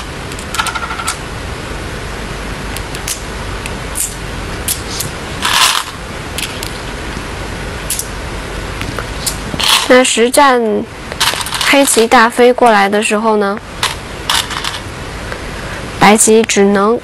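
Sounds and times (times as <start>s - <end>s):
steady hiss: 0.0s - 16.7s.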